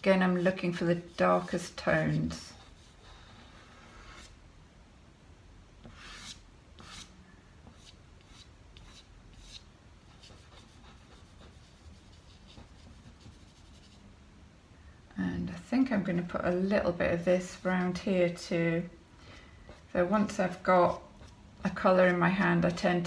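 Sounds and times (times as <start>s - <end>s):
pastel scratching on paper: 5.9s - 7.1s, 7.8s - 14.0s.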